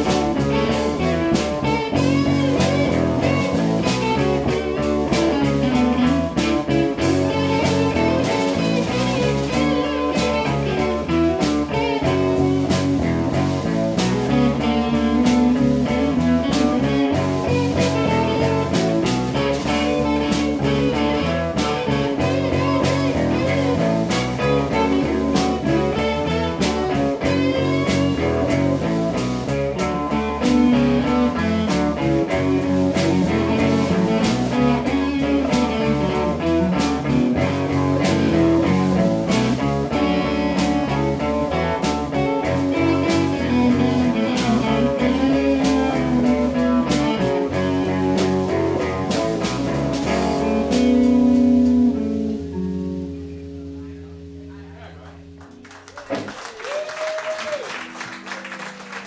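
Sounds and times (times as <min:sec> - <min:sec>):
drum kit steady beat: 0:00.0 - 0:53.1
electric guitars: 0:00.0 - 0:59.0.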